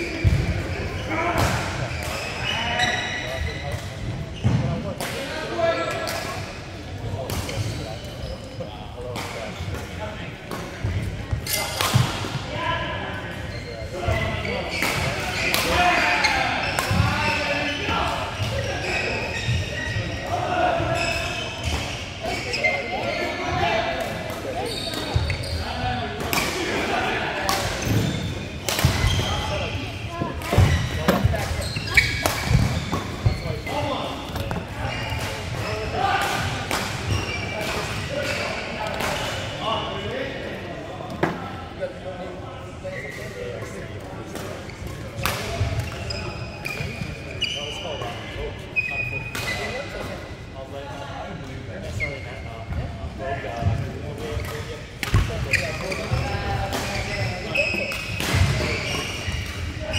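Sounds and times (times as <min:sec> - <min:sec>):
players' voices: 0:00.0 - 0:59.9
rackets hitting shuttlecock: 0:30.3 - 0:35.6, 0:54.4 - 0:59.7.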